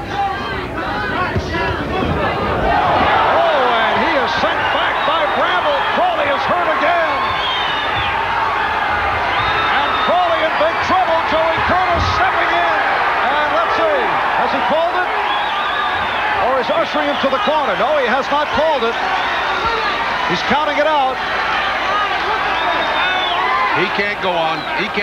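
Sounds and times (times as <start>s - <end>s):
crowd yelling and screaming: 0.0s - 25.0s.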